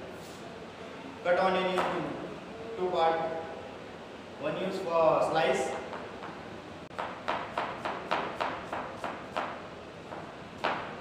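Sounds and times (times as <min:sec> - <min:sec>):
knife slicing onion on board: 0:07.0 - 0:10.9.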